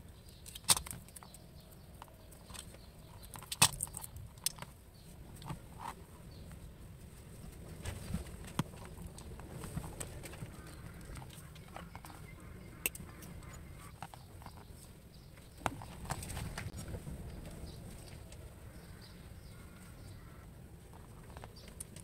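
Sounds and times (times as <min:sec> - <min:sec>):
low steady rumble: 0:01.0 - 0:22.0.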